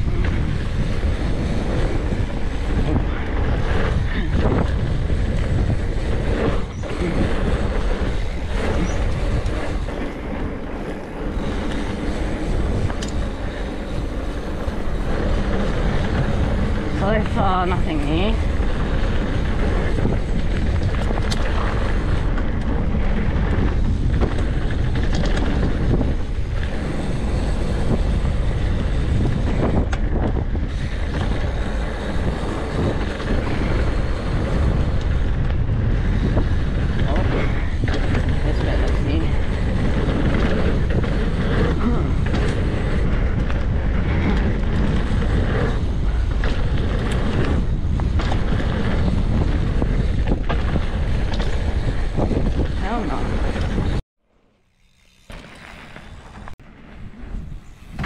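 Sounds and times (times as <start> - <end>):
wind rushing over microphone: 0.0 - 54.0, 54.8 - 58.0
bike tyre noise on dirt: 0.0 - 58.0.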